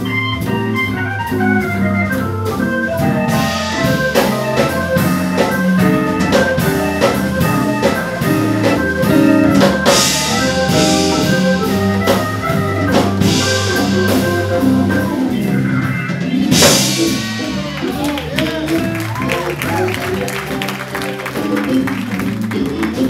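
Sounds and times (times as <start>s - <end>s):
drum kit: 0.0s - 23.0s
organ playing jazz: 0.0s - 23.0s
cymbals: 3.2s - 15.6s, 16.5s - 19.9s.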